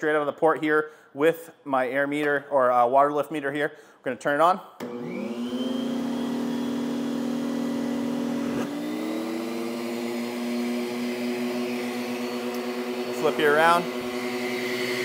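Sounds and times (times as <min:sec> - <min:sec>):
shop vacuum motor whine: 0:04.8 - 0:15.0.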